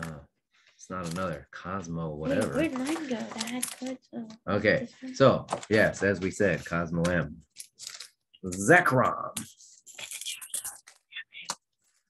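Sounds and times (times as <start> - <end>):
person whispering: 10.0 - 11.7.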